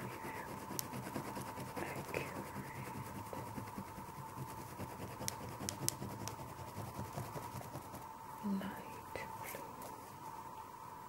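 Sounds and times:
oil pastel scratching on paper: 0.0 - 8.1
sharp ticks: 5.2 - 6.4.

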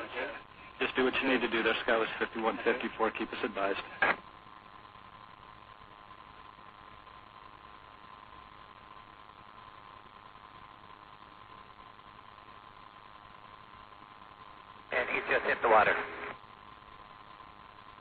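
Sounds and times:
faint hum: 0.0 - 18.0
radio hiss: 0.0 - 18.0.

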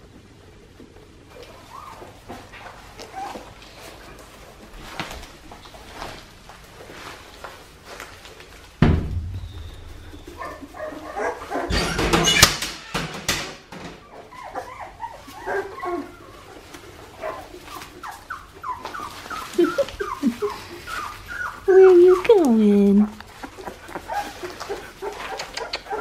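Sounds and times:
rustling: 0.0 - 12.8, 13.9 - 26.0
puppies whimpering and yipping: 1.3 - 4.4, 9.4 - 12.5, 14.0 - 26.0
thump: 8.8 - 10.2.

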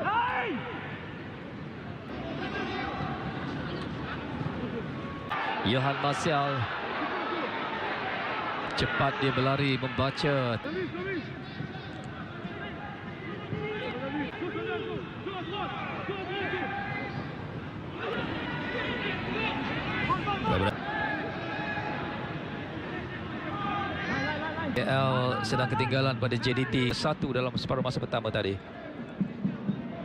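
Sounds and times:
stadium crowd voices and shouts: 0.0 - 30.0.

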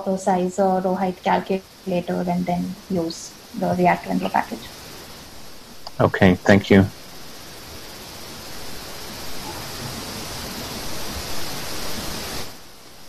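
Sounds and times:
microphone background hiss: 0.0 - 13.0.

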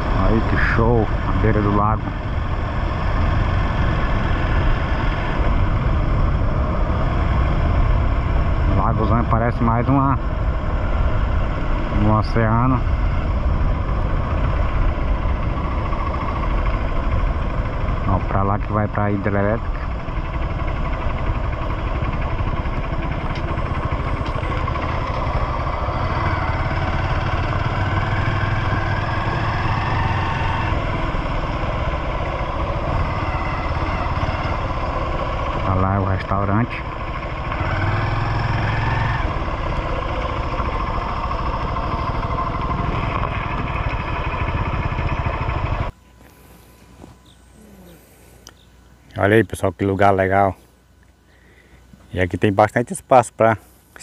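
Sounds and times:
motorcycle engine running: 0.0 - 49.0.

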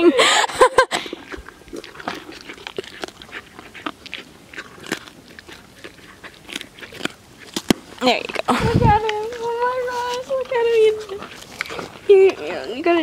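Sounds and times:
horse chewing carrot crunches: 0.6 - 13.0.

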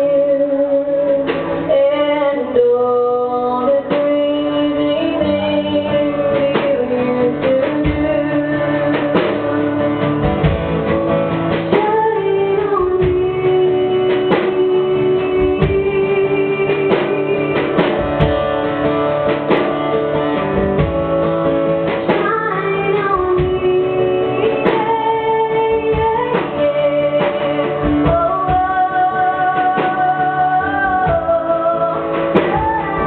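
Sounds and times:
woman singing: 0.0 - 21.0, 21.9 - 33.0
strummed acoustic guitar: 0.0 - 33.0.

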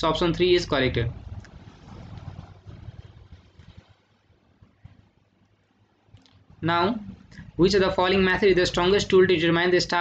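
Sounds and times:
faint low rumble: 0.0 - 8.4.

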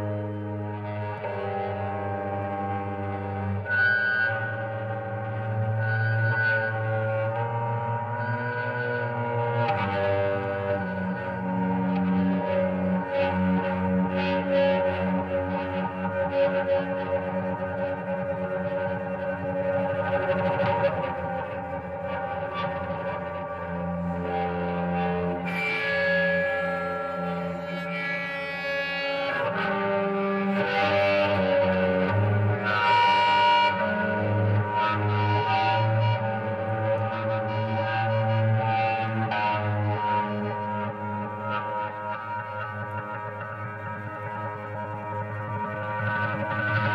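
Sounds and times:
bowed guitar droning tones: 0.0 - 46.9.

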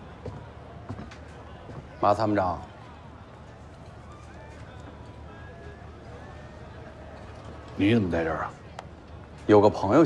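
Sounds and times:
faint distant chatter: 0.0 - 10.0.

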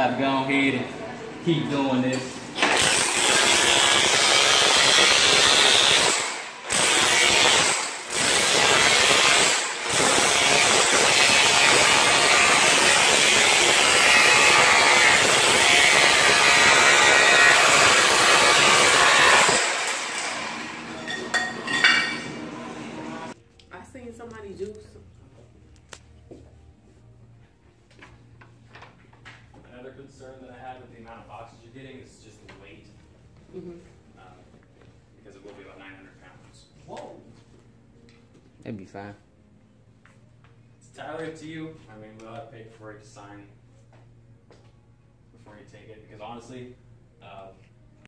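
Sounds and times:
electric chipping hammer on tile: 2.6 - 21.0.

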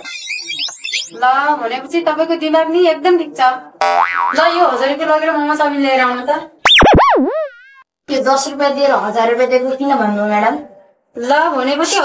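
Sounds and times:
comedy boing spring effect: 3.8 - 4.6, 6.7 - 7.8.

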